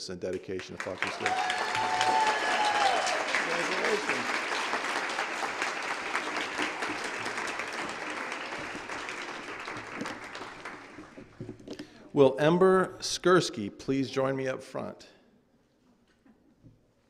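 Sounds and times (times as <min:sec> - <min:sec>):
audience applauding: 0:00.3 - 0:11.8.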